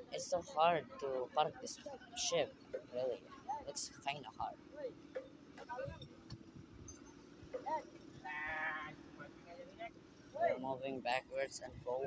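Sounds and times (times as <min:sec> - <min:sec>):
loud drawn-out voiced call: 0:08.2 - 0:09.0.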